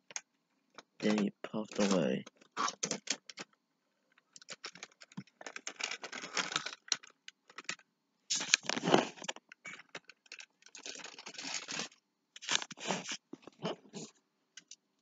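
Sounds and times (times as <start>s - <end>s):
toy train clattering on track: 1.0s - 2.1s.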